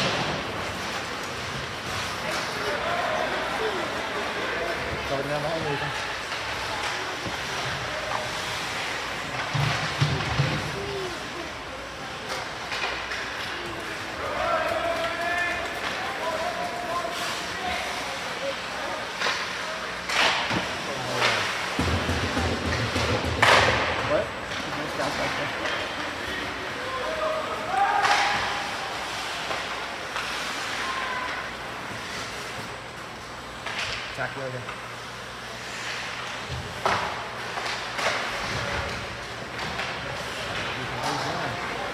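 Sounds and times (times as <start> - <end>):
pucks and sticks striking boards: 0.0 - 3.4, 4.0 - 11.4, 12.2 - 17.9, 19.0 - 34.8, 35.7 - 41.9
rink background noise: 0.0 - 41.9.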